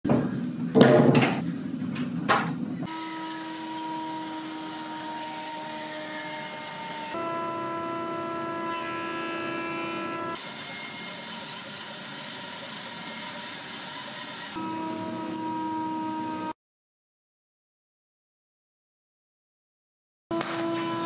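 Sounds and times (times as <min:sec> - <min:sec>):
bandsaw humming and whining: 0:02.9 - 0:16.6, 0:20.3 - 0:21.0
jointer planing hiss: 0:08.8 - 0:15.4.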